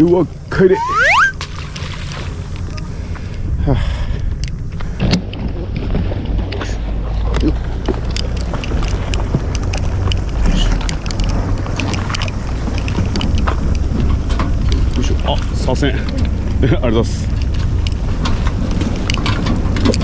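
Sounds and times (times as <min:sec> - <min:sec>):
boat engine rumbling: 0:05.2 - 0:20.0.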